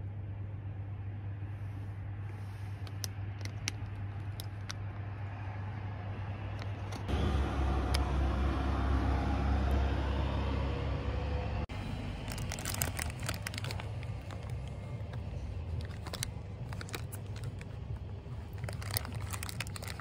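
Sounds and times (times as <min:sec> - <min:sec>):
road traffic rumble: 0:00.0 - 0:20.0
paper wrapper crinkling: 0:11.8 - 0:20.0.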